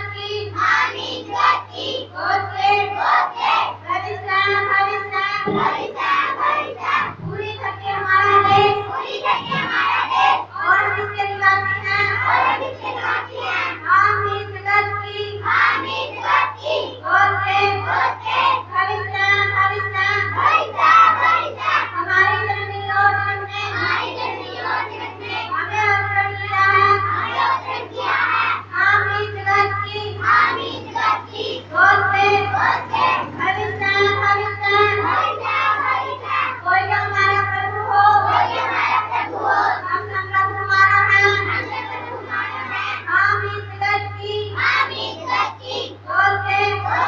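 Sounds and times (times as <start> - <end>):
girls singing into microphones: 0.0 - 47.0
steady low hum: 0.0 - 47.0.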